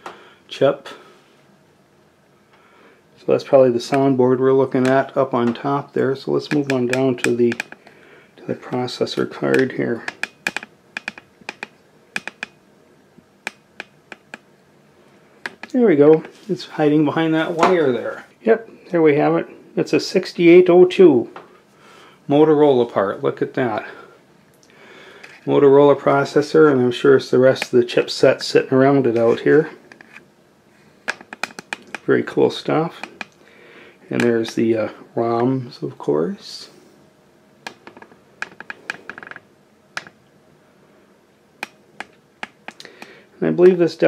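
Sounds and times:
light sharp clicks and taps: 6.4s - 7.9s, 8.6s - 12.6s, 15.4s - 16.4s, 41.6s - 43.8s.

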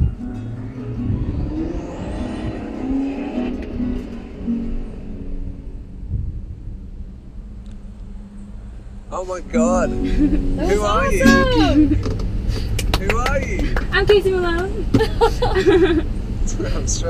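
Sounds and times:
acoustic guitar picking: 0.0s - 1.3s, 9.5s - 12.4s
low rumble: 0.0s - 16.7s.

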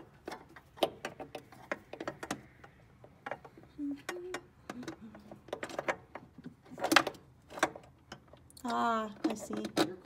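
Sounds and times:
small metallic clicks and taps: 0.0s - 10.0s.

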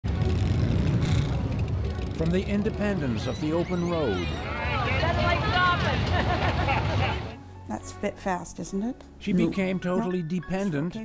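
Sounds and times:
motorcycle engines running: 0.0s - 7.3s.

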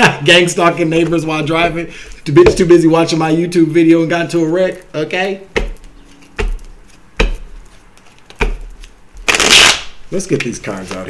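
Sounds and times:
cards riffling: 5.8s - 11.0s.

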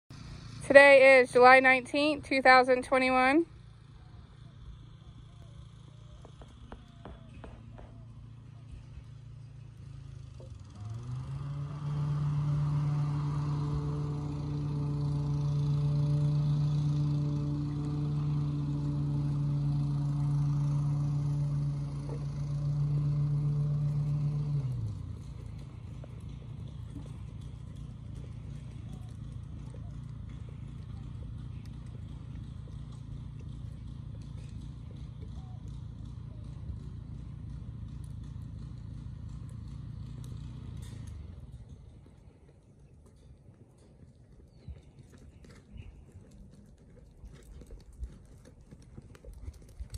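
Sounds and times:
machine hum: 0.1s - 42.4s
horse hoofbeats on sand: 6.1s - 49.9s.

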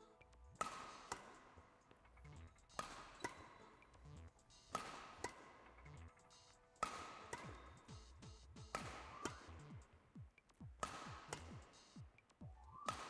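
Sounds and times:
badminton rackets hitting shuttlecock: 0.2s - 13.0s.

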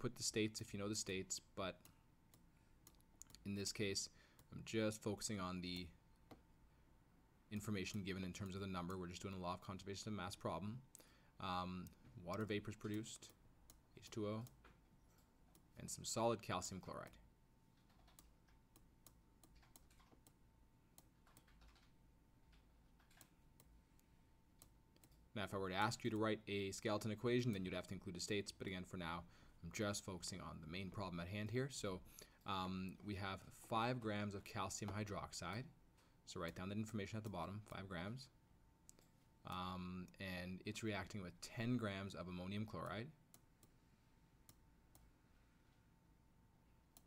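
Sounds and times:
faint steady hum: 0.0s - 47.0s.

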